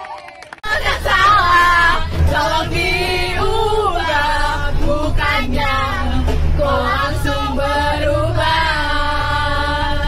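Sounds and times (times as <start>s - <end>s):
bus rumble: 0.0s - 10.0s
girls singing together: 0.6s - 10.0s.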